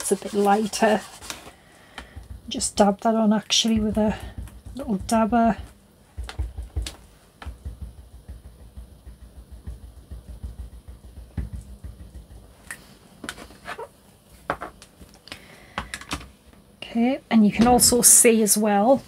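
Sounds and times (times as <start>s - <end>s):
ink dauber tapping: 2.0s - 2.9s, 3.5s - 12.5s.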